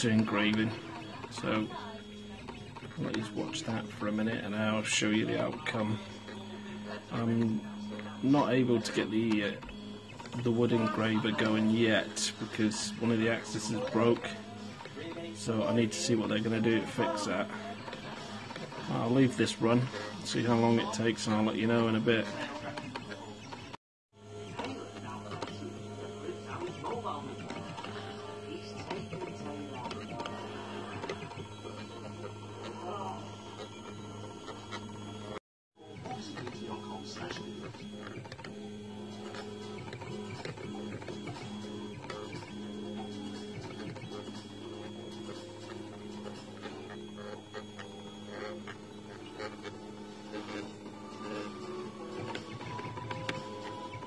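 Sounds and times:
stepper motors whirring: 0.0s - 54.0s
television music: 0.0s - 54.0s
television speech: 0.0s - 54.0s.

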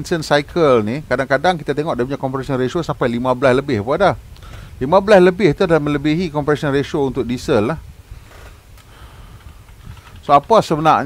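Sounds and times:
man speaking: 0.0s - 4.2s, 4.8s - 7.8s, 10.2s - 11.0s
low steady hum: 0.0s - 11.0s.

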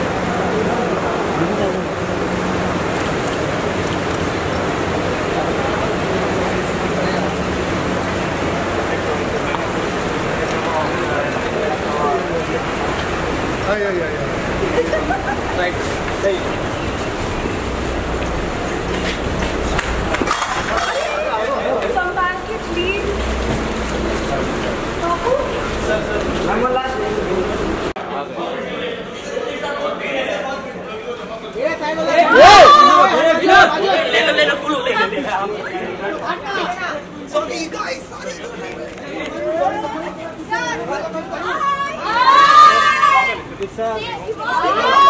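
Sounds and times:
indistinct crowd voices: 0.0s - 45.0s.

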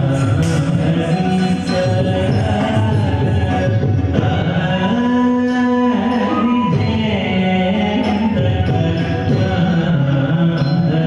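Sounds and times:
person singing long notes: 0.0s - 11.0s
steady musical accompaniment: 0.0s - 11.0s.

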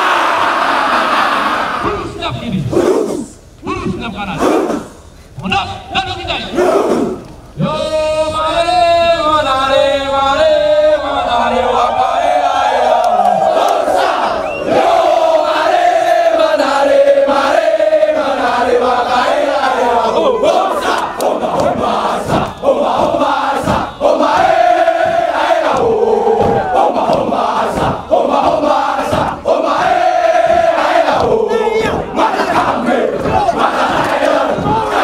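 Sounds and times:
soldiers chanting and shouting: 0.0s - 35.0s
sharp short beats: 20.8s - 35.0s.

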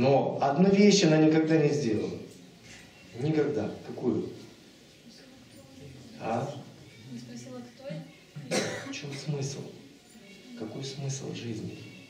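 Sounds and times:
quiet speech: 0.0s - 12.0s
person coughing: 8.5s - 9.4s.

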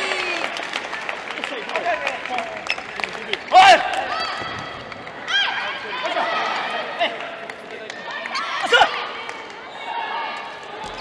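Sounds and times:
murmur of a sports hall: 0.0s - 11.0s.

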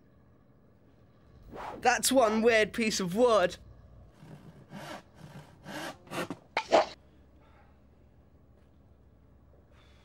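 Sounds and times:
handsaw cutting wood: 4.2s - 6.4s.

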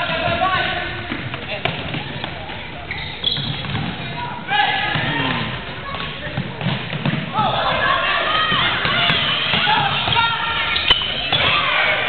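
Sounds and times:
chatter and shouts echoing: 0.0s - 12.0s
sneakers squeaking on hardwood: 1.0s - 4.3s, 8.4s - 11.7s.

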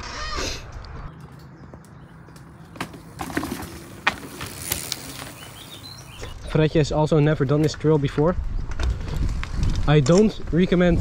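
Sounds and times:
bike rattling and knocking: 1.2s - 6.3s
bike tyres rumbling on dirt: 1.7s - 10.7s.

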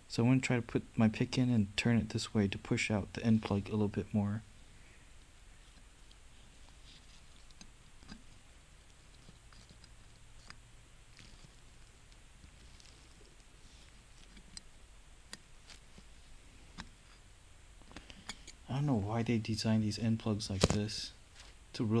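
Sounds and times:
faint metal clicks and scrapes: 5.6s - 18.6s.

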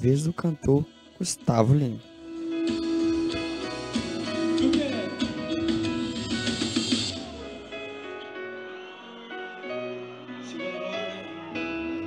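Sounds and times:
person singing: 8.8s - 12.0s.

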